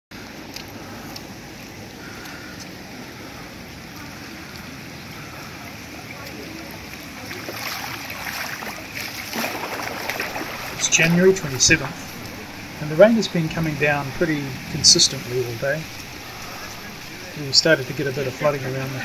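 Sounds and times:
heavy rain on paving: 0.1s - 19.0s.

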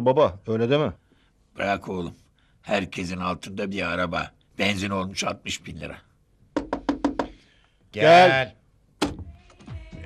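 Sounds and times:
knocking on a door: 6.5s - 7.4s.

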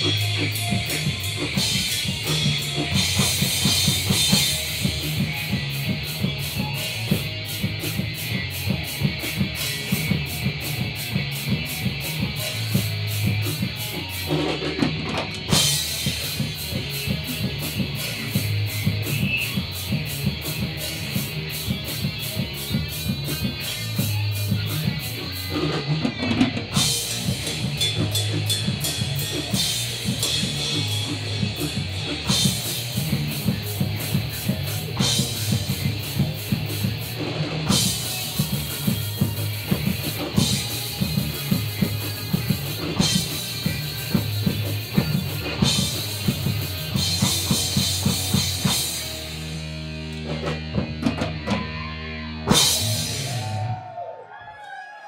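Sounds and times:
live rock band playing: 0.0s - 54.2s.

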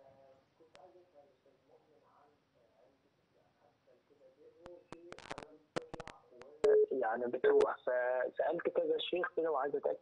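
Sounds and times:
phone line clicks and crackle: 4.9s - 6.9s.

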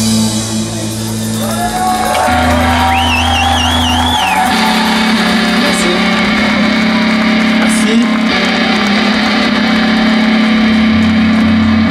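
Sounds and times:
distorted electric guitar drone: 0.0s - 11.9s.

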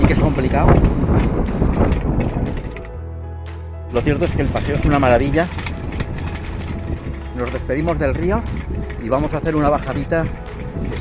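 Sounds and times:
handbike rattling and clicking: 0.0s - 3.0s, 3.9s - 11.0s
wind buffeting microphone: 0.0s - 3.1s, 3.9s - 11.0s.

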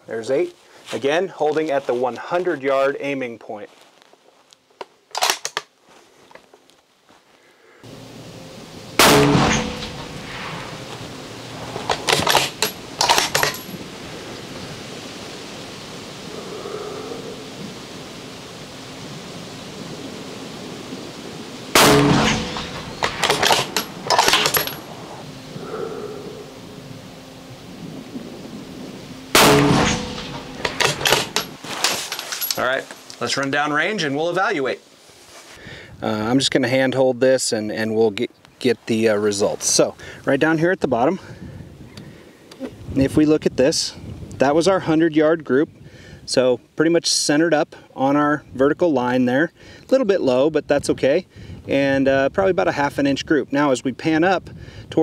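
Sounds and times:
rifle shots: 9.0s - 10.7s, 11.8s - 13.6s, 21.8s - 24.8s, 29.3s - 31.7s.

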